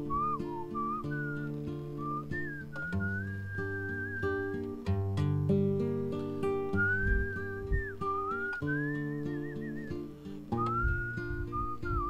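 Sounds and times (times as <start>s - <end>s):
man whistling a melody: 0.0s - 4.9s, 6.7s - 12.0s
acoustic guitar: 0.0s - 12.0s.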